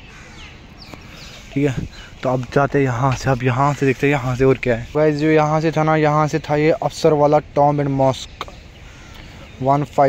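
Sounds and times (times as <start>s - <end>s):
crows cawing: 0.0s - 4.3s, 8.3s - 9.9s
man's voice: 1.5s - 8.4s.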